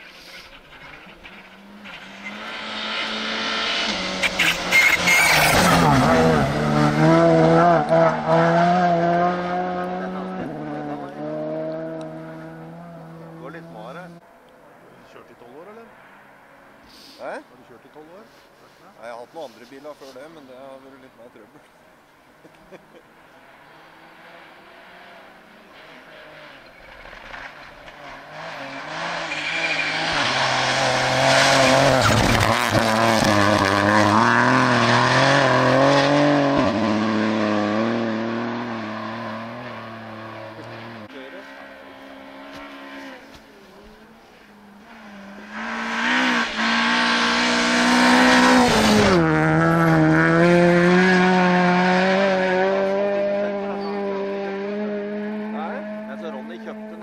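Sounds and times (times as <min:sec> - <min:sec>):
rally car engine revving: 0:00.2 - 0:14.2, 0:22.4 - 0:57.0.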